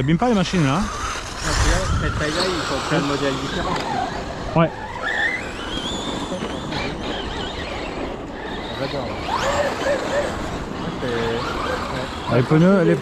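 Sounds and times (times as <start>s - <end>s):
rc car motors whining: 0.0s - 13.0s.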